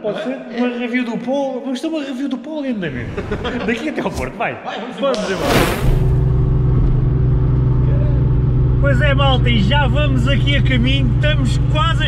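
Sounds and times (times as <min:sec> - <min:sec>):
car engine and road noise: 0:05.2 - 0:12.0.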